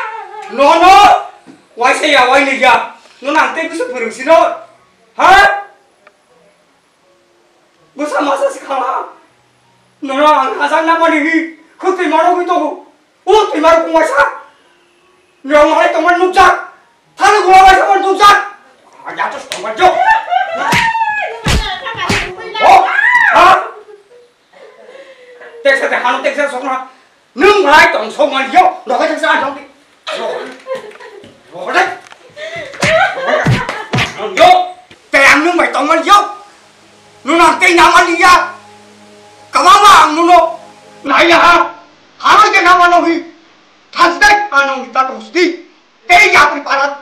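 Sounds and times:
woman wailing cry: 0.0 - 0.6, 19.9 - 25.6
voices: 17.2 - 26.8
sharp slapping hits: 20.7 - 22.4, 32.8 - 34.5.

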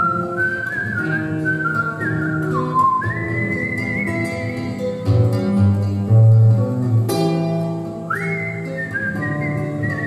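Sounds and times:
whistled melody: 0.0 - 5.0, 8.1 - 10.0
strummed classical guitar chord: 0.0 - 10.0.

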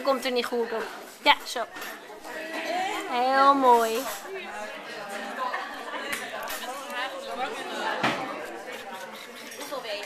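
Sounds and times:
people talking in a busy room: 0.0 - 10.0.

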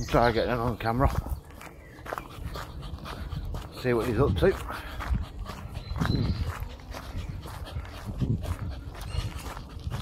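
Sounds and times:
footsteps: 0.1 - 10.0.

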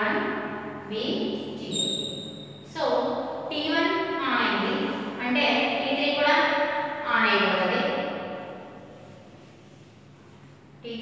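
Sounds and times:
woman's voice: 0.9 - 1.8, 2.7 - 6.4, 7.0 - 8.0.

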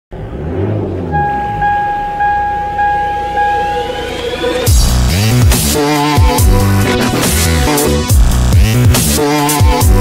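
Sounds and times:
rising sweep: 0.8 - 5.5
low hum: 1.0 - 5.2
electronic beep: 1.1 - 4.8
music: 1.2 - 10.0.

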